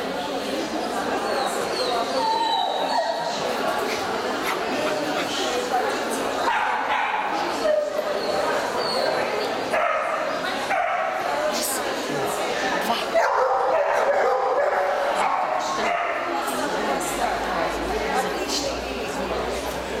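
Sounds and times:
people talking in large hall: 0:00.0 - 0:20.0.

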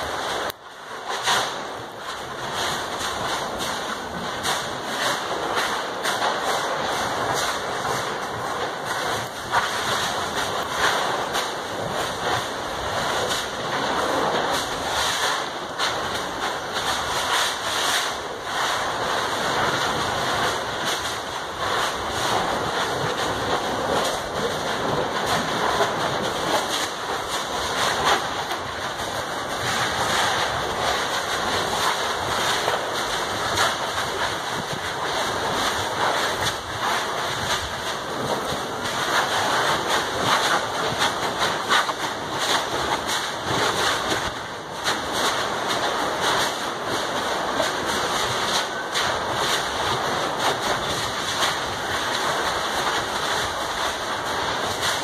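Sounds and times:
steady rushing hiss: 0:00.0 - 0:55.0
vegetation burning with crackles: 0:00.0 - 0:55.0.

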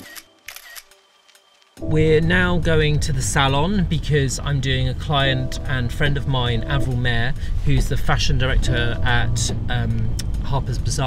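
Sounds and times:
camera shutter clicks: 0:00.0 - 0:01.0
held music: 0:01.4 - 0:11.0
man speaking: 0:01.8 - 0:11.0.

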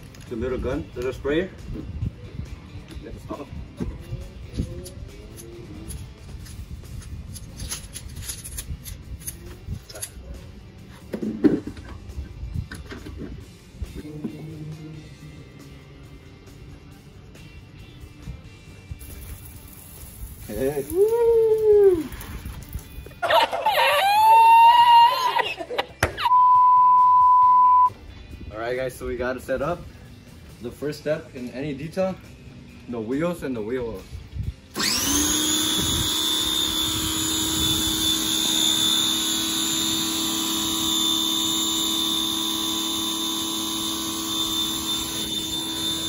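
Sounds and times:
background music: 0:00.0 - 0:46.0
steady single-pitch beep: 0:26.3 - 0:27.9.

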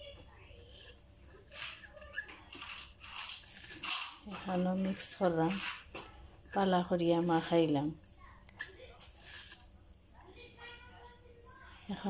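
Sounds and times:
fingers mixing herbs on plate: 0:00.2 - 0:12.0.

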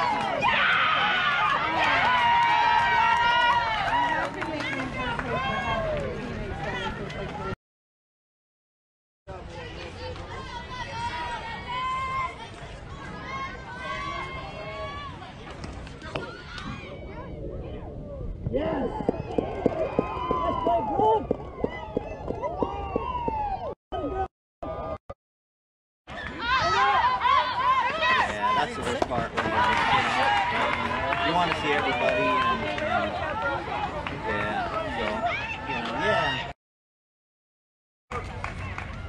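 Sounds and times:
voices shouting over one another: 0:26.3 - 0:28.9.

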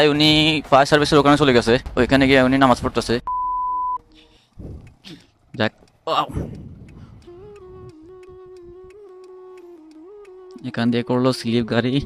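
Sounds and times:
electronic beep: 0:03.2 - 0:04.0.

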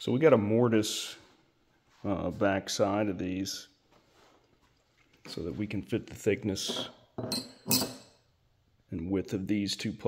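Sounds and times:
metal bracket pieces clinking: 0:06.7 - 0:08.2.

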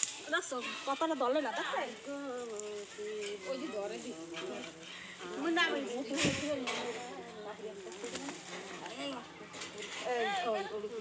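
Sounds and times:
faint voices: 0:00.0 - 0:11.0
rustle of dry branches: 0:00.0 - 0:11.0.

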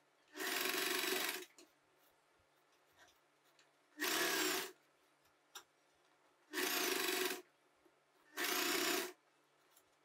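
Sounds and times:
sewing machine stitching: 0:00.3 - 0:01.6, 0:04.0 - 0:04.8, 0:06.5 - 0:07.5, 0:08.3 - 0:09.2.

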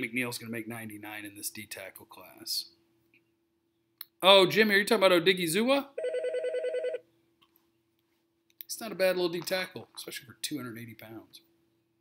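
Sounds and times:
warbling electronic phone ringer: 0:06.0 - 0:07.0.

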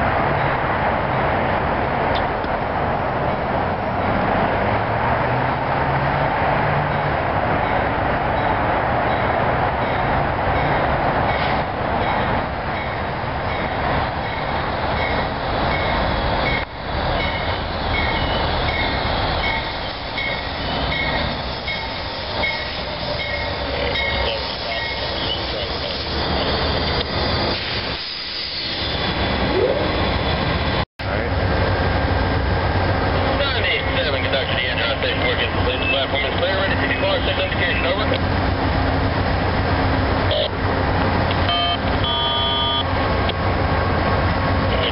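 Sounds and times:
train engine and wheel noise: 0:00.0 - 0:44.9.

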